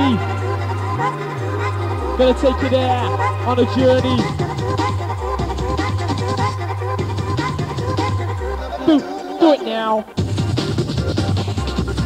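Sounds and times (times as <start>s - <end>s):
hardcore rave music: 0.0s - 12.0s.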